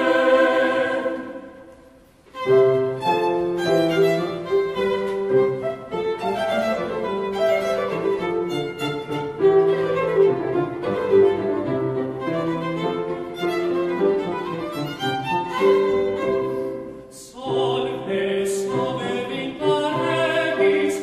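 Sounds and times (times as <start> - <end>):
violin melody: 2.2 - 17.1.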